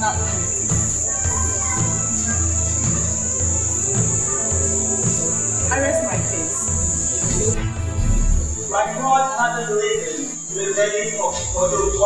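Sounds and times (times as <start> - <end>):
pulsing low bass music: 0.0 - 8.9
cricket shrill: 0.0 - 12.0.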